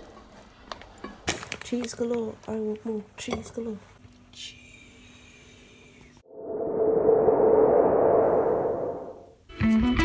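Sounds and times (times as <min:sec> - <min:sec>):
hushy swell transition effect: 0:06.3 - 0:09.4.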